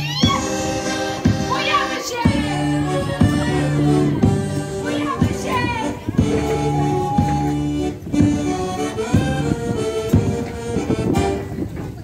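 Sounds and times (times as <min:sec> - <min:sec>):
people singing: 0:00.0 - 0:07.6
accordion chords: 0:00.0 - 0:11.6.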